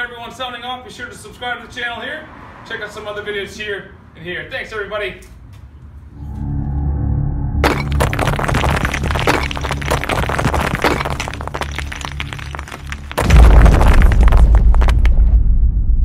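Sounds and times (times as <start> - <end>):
low drone: 6.1 - 8.0
crumbling shattering rock debris: 7.6 - 15.3
loud low boom: 13.0 - 16.0.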